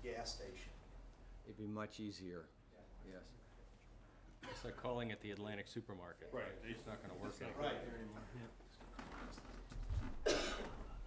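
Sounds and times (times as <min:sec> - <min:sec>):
faint room hum: 0:00.0 - 0:11.0
person coughing: 0:04.4 - 0:04.8, 0:10.2 - 0:10.9.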